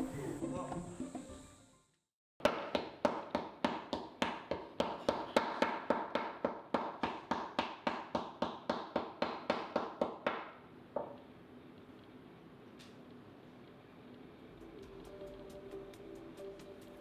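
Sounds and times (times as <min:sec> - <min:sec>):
wooden paddle beating clay: 0:02.4 - 0:10.5.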